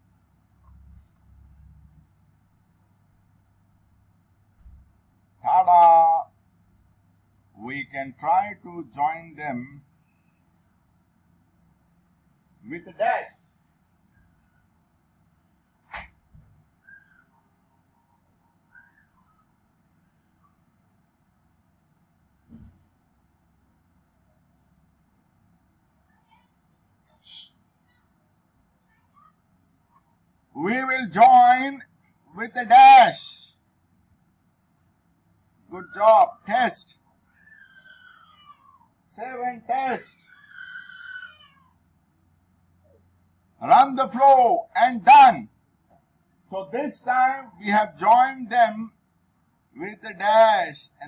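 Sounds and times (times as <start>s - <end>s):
faint room hum: 0.0s - 51.0s
faint high chirps: 9.8s - 10.8s, 16.7s - 20.8s
high-pitched animal call: 37.3s - 38.9s, 40.2s - 41.8s.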